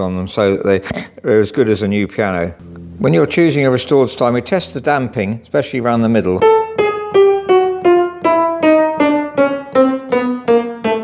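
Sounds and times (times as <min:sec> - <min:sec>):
piano single notes: 0:06.4 - 0:11.0.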